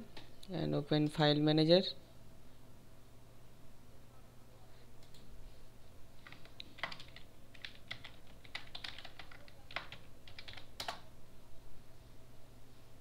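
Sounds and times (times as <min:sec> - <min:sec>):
computer keyboard typing: 0:06.2 - 0:11.1.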